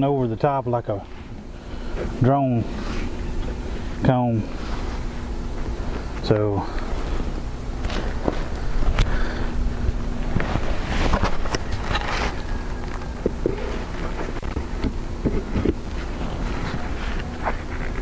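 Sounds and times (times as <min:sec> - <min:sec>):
honeybees humming: 0:00.0 - 0:18.0.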